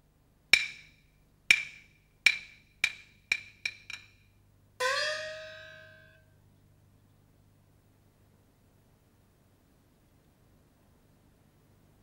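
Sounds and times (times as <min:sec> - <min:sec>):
sharp ringing wooden strikes: 0:00.6 - 0:06.3.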